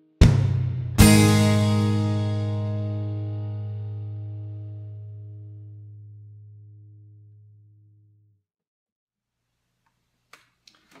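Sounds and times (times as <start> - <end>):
acoustic guitar chord ringing: 1.0 - 7.4.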